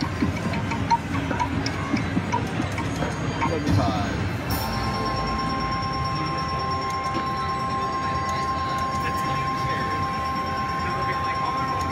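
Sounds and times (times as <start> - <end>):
casino floor hum and chatter: 0.0 - 11.9
slot machine counting tone: 0.0 - 11.9.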